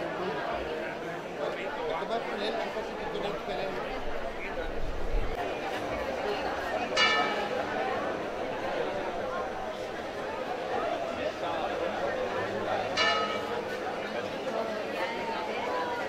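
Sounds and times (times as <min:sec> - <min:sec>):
crowd chatter: 0:00.0 - 0:16.0
church bell ringing: 0:07.0 - 0:07.7, 0:13.0 - 0:13.8.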